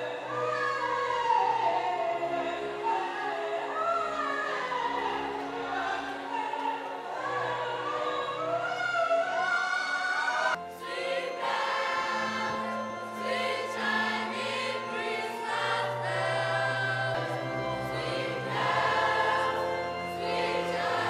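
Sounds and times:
choir singing in parts: 0.0 - 21.0.

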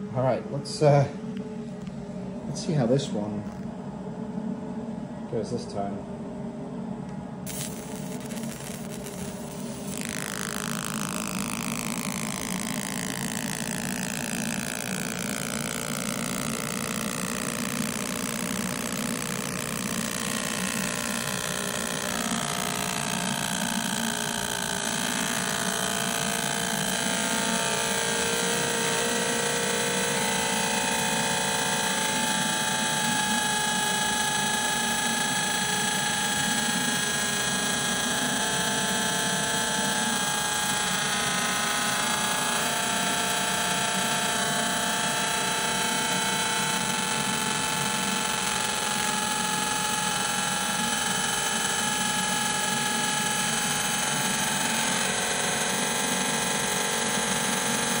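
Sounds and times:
laser machine hum: 0.0 - 58.0
whine of steady tones: 0.0 - 58.0.

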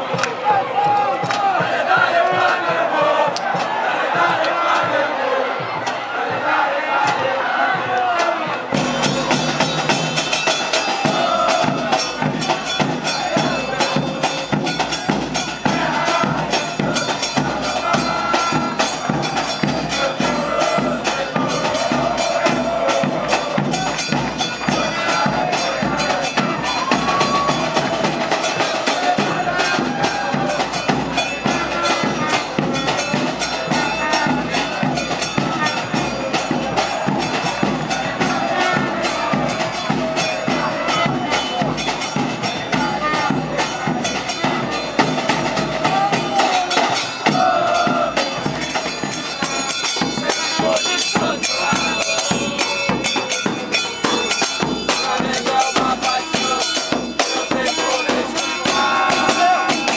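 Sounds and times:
drums and hand percussion: 0.0 - 59.9
fans singing a chant: 0.0 - 59.9.

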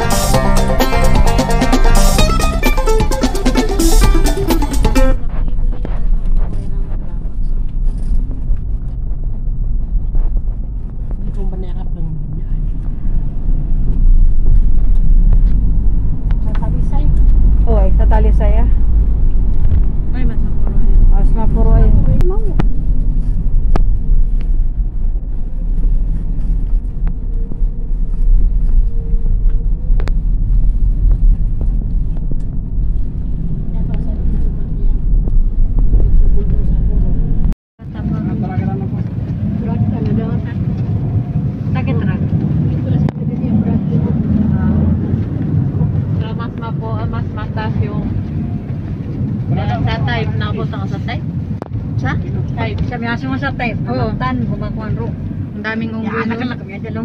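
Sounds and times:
road noise: 0.0 - 57.0
wind buffeting rumble: 0.0 - 57.0.

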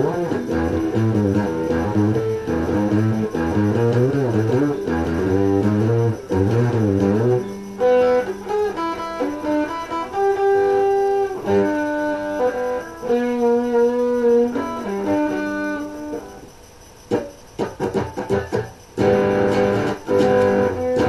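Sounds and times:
electric guitar: 0.0 - 21.0.

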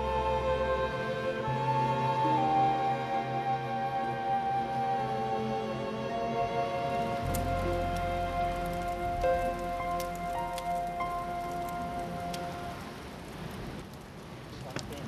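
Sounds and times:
soft background music: 0.0 - 13.1
water drips: 6.9 - 15.0.

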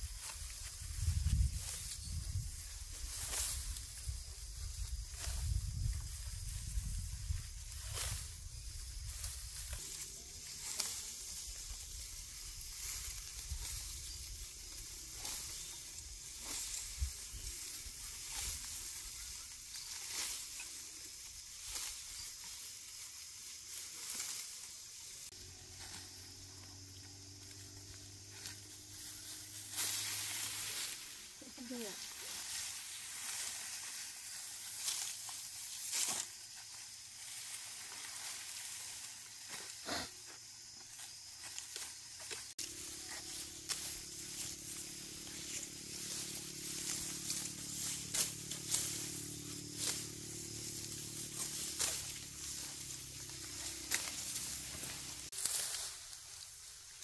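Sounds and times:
rice stalks rustling and crackling: 0.0 - 57.0.

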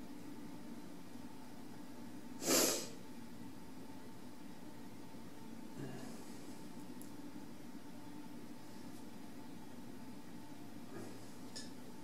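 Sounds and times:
low room hum: 0.0 - 12.0
nose sniff: 2.4 - 3.0.

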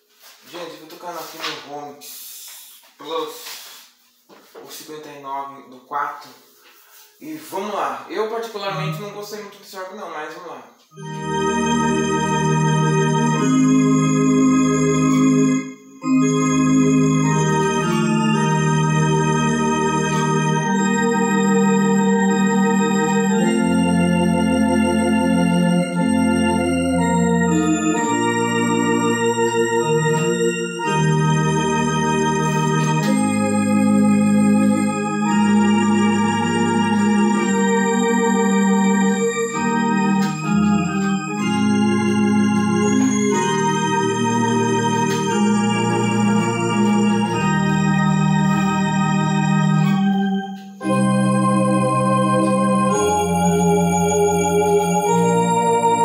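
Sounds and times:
electronic organ chords: 10.9 - 56.0.

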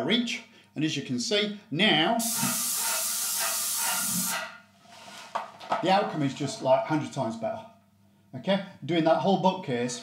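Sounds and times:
paint spray gun hissing: 2.2 - 4.5.

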